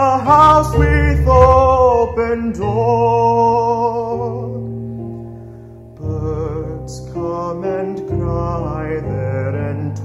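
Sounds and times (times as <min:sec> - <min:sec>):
man singing with vibrato: 0:00.0 - 0:04.8, 0:06.0 - 0:10.0
instrumental accompaniment: 0:00.0 - 0:10.0.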